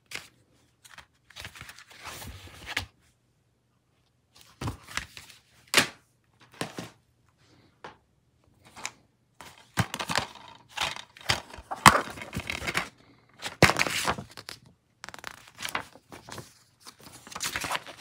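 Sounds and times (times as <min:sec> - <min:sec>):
paper insert rustling: 0:00.1 - 0:02.9, 0:08.6 - 0:18.0
plastic cases clacking: 0:08.8 - 0:14.6.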